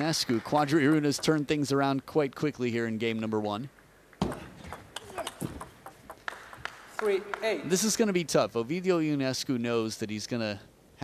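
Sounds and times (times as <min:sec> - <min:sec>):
table tennis ball bouncing: 0:03.7 - 0:07.5.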